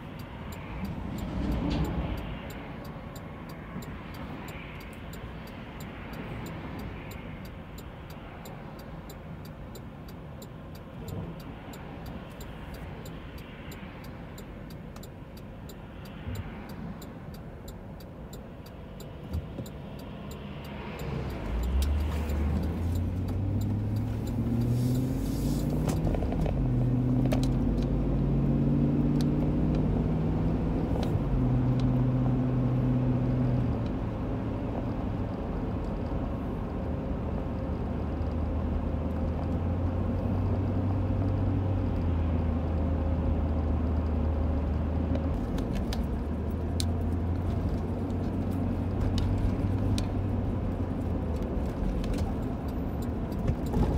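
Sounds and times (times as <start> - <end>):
car engine rumble: 0.0 - 53.9
car road noise: 0.0 - 53.9.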